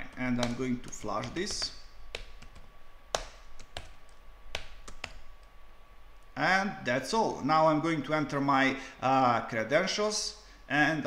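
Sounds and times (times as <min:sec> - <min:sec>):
keyboard key clicks: 0:00.4 - 0:05.2.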